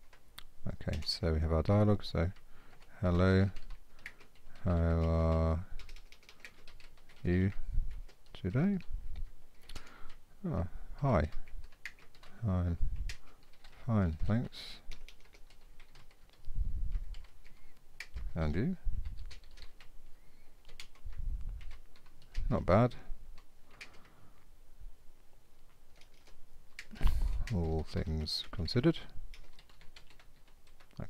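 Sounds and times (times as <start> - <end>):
typing on computer keyboard: 2.3 - 10.2, 11.2 - 12.4, 13.0 - 18.3, 19.0 - 19.9, 20.6 - 22.5, 23.4 - 24.2, 25.9 - 31.0.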